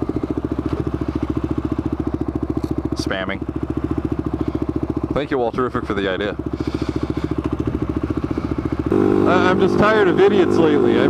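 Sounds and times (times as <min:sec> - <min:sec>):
quad bike engine running: 0:00.0 - 0:11.0.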